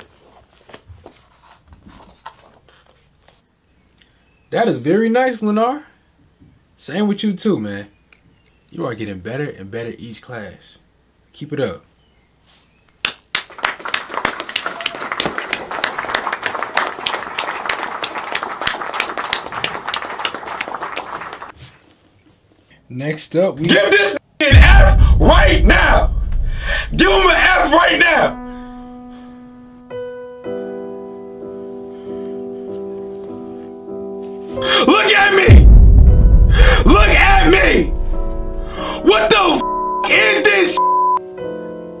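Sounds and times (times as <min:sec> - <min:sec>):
paper rustling: 0:00.0 - 0:03.5
small group applauding: 0:13.0 - 0:21.6.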